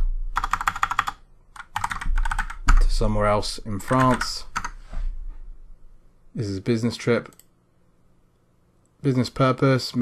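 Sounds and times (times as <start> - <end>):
fingers typing on keyboard: 0.4 - 2.9, 3.8 - 4.8.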